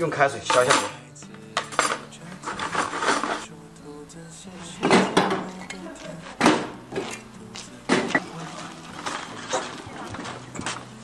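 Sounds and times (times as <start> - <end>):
metal hooks clinking in bucket: 0.4 - 1.0, 1.6 - 2.0.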